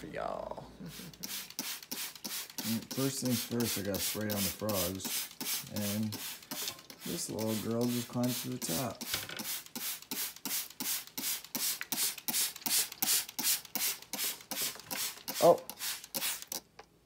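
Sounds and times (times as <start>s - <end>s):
spray bottle hissing sprays: 0.8s - 16.7s.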